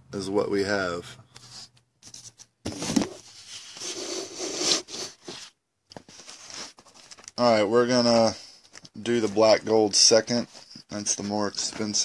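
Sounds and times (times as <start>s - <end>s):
handling noise rubbing and scraping: 0.9s - 12.0s.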